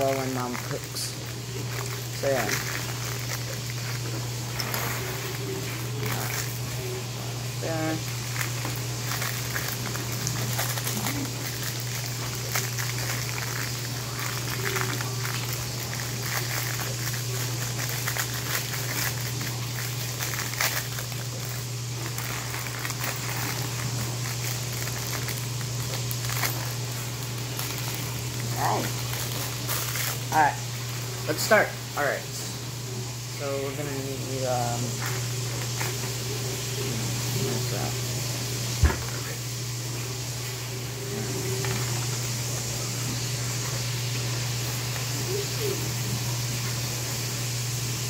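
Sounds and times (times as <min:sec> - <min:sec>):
plastic bag crinkling: 0:00.0 - 0:32.6, 0:33.3 - 0:38.1, 0:40.4 - 0:45.9
dishwasher humming: 0:00.0 - 0:48.0.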